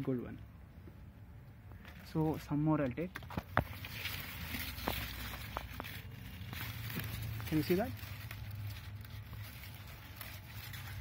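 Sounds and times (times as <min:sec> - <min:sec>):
leaves and stems rustling: 0:01.8 - 0:11.0.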